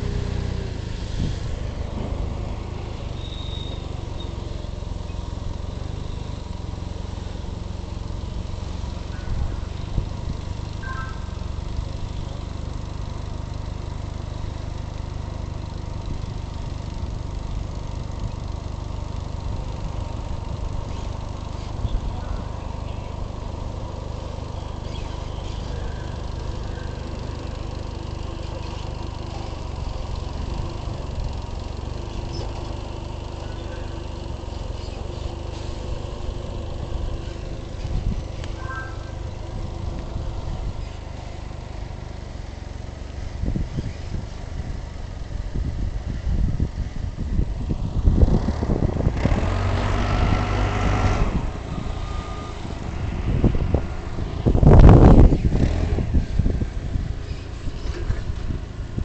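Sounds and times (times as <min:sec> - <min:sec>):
low mechanical rumble: 0:00.0 - 0:59.0.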